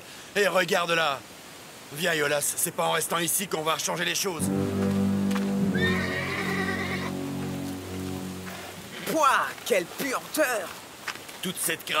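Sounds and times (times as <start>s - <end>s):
background music chords: 4.4s - 9.0s
horse whinnying: 5.8s - 7.1s.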